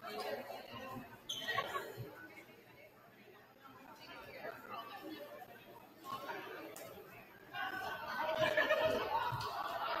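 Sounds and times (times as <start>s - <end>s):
indistinct chatter: 0.0s - 10.0s.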